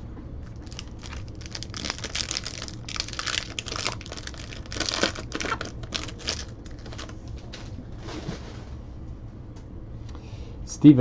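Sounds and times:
foil wrapper crinkling: 0:00.4 - 0:07.3.

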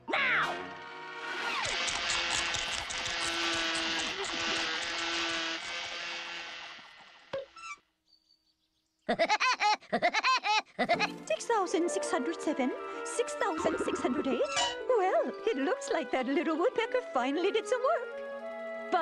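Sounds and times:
cartoon bird rapid laugh: 0:09.1 - 0:11.1
cartoon orchestral music: 0:10.9 - 0:19.0.

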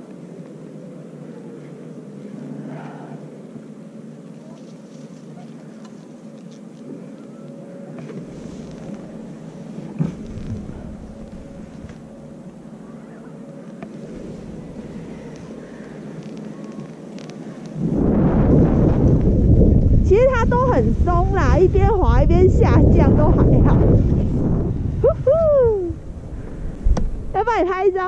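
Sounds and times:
wind rumble on microphone: 0:07.9 - 0:12.7, 0:13.9 - 0:28.0.

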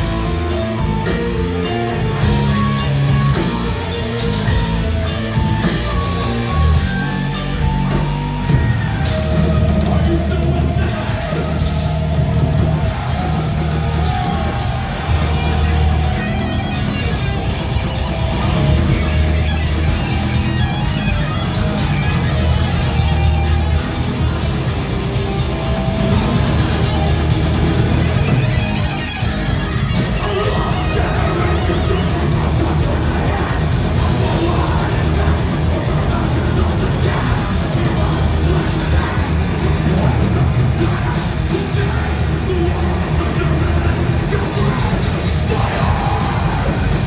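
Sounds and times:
thrash metal band playing: 0:00.0 - 0:47.0.

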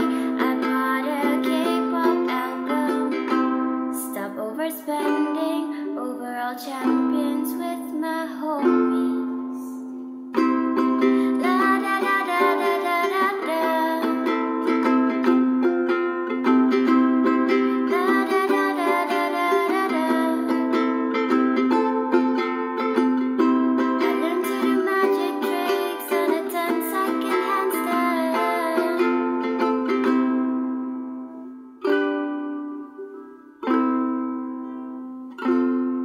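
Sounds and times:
woman singing: 0:00.0 - 0:10.0, 0:11.2 - 0:14.5, 0:17.5 - 0:20.9, 0:24.0 - 0:29.5
ukulele strummed in chords: 0:00.0 - 0:36.0.

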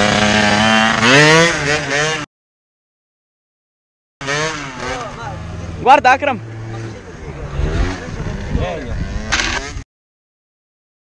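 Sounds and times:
small motorbike engines revving: 0:00.0 - 0:02.3, 0:04.2 - 0:09.8
wind rumbling on microphone: 0:07.2 - 0:09.8.

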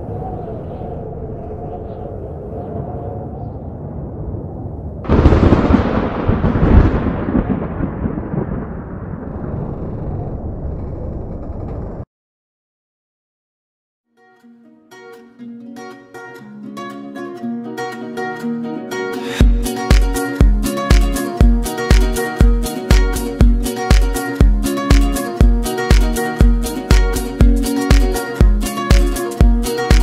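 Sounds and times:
loud rumbling boom: 0:03.8 - 0:12.0
low rumbling drone: 0:07.9 - 0:12.0.

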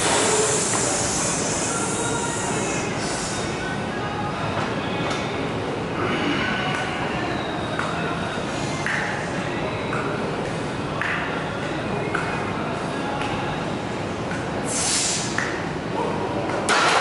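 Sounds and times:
faint background music: 0:00.0 - 0:17.0
rushing room noise: 0:00.0 - 0:17.0.

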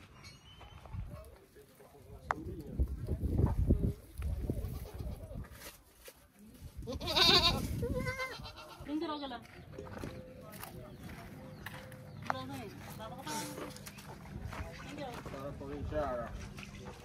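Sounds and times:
goat bleating: 0:04.6 - 0:05.4, 0:06.8 - 0:09.0.

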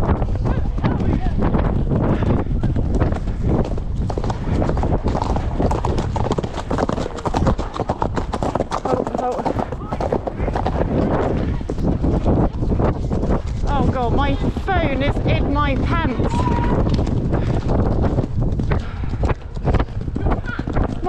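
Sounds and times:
hoofbeats on dirt track: 0:00.0 - 0:21.0
wind: 0:00.0 - 0:21.0.

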